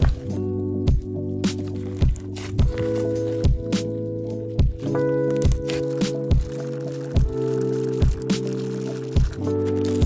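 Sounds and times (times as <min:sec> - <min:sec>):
background music with held chords: 0:00.0 - 0:10.0
slime squishing: 0:05.3 - 0:10.0.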